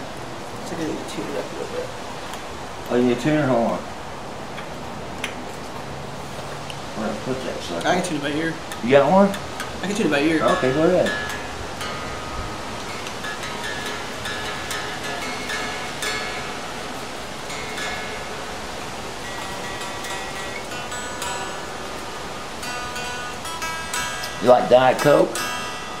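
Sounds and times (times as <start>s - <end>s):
electric guitar notes ringing: 7.8s - 26.0s.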